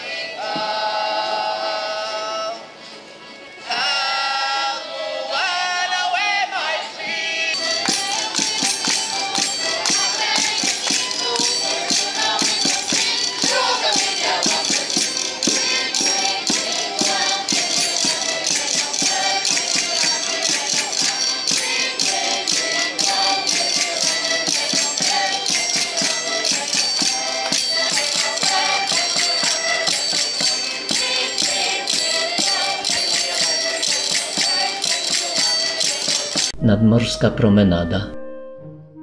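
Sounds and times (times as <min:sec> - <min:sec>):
people singing along: 0:00.0 - 0:02.7, 0:03.6 - 0:36.5
accordions playing: 0:07.2 - 0:38.8.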